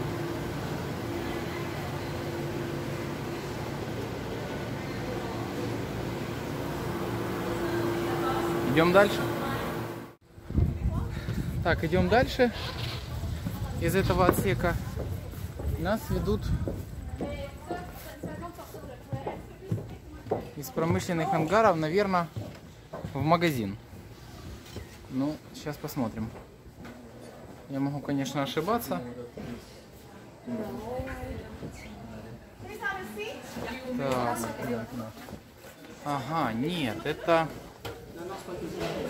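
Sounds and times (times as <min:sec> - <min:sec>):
machinery hum: 0:00.0 - 0:10.2
footsteps on wooden ramp: 0:13.1 - 0:21.6, 0:22.2 - 0:24.1.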